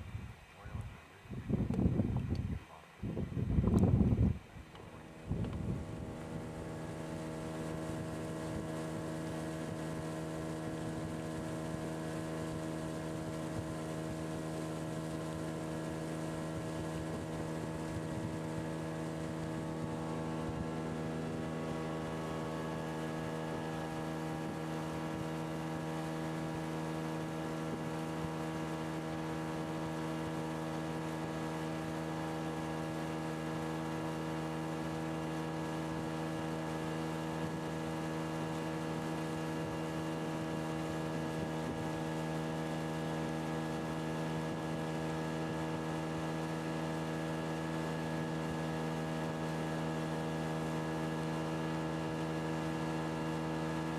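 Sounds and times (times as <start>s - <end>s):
outboard motor humming: 0.0s - 53.9s.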